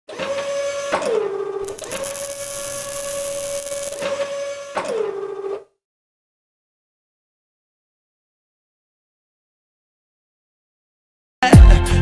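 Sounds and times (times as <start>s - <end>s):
robotic motor whir: 1.6s - 4.1s
hissing rush: 1.7s - 4.0s.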